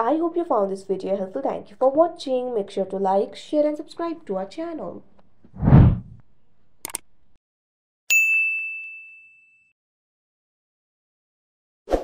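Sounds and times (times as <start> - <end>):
notification bell ding: 8.1 - 9.7.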